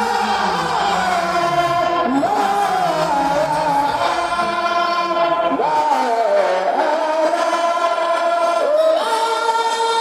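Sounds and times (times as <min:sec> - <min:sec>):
voices chanting religious poem: 0:00.0 - 0:10.0.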